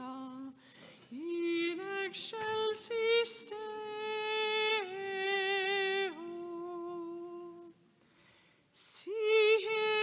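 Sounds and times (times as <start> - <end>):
woman singing a hymn: 0.0 - 7.8, 8.8 - 10.0.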